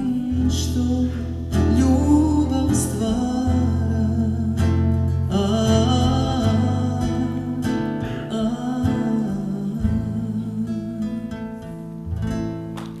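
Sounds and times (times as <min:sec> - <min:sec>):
classical guitar strumming chords: 0:00.0 - 0:13.0.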